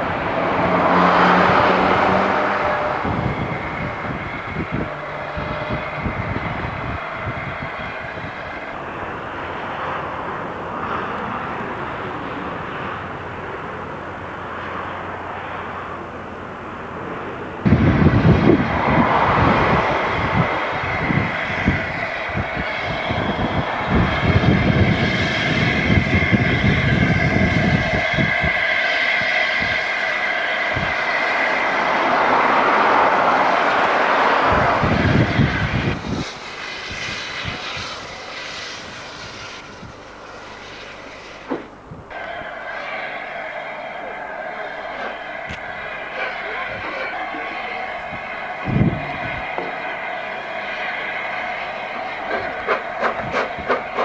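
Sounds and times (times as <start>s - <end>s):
rapid exhaust beats: 0.0s - 54.0s
steam locomotive passing: 0.0s - 54.0s.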